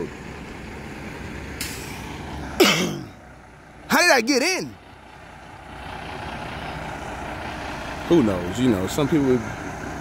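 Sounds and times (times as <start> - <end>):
diesel truck engine running: 0.0 - 10.0.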